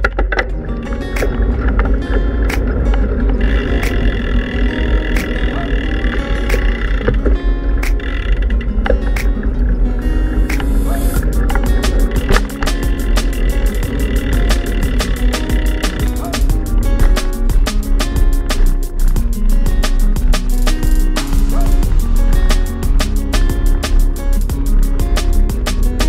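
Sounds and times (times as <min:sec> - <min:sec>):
background music with beat: 0:00.0 - 0:26.0
fast ticking percussion: 0:10.5 - 0:26.0.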